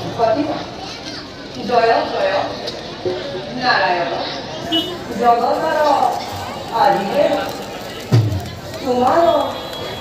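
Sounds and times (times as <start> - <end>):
people talking: 0.0 - 10.0
children's voices: 0.6 - 1.6, 4.2 - 9.2.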